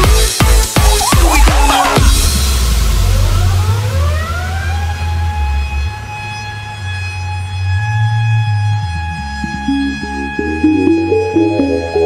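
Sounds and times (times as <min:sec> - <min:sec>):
siren-like synth tone: 0:04.0 - 0:12.0
low bass line: 0:09.1 - 0:12.0.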